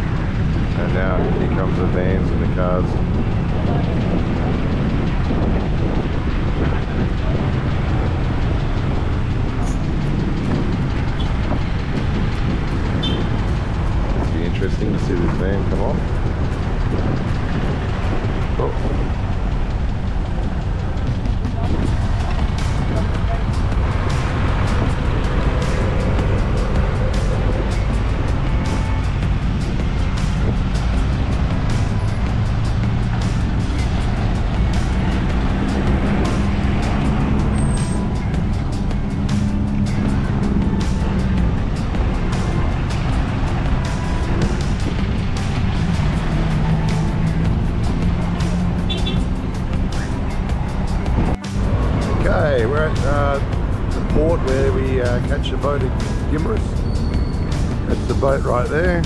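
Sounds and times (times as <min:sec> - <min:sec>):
vehicle engines humming: 0:00.0 - 0:59.0.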